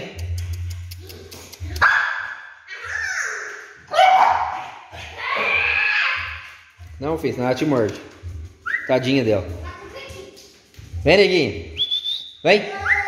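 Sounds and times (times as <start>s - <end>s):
small dog barking: 1.8s - 2.4s.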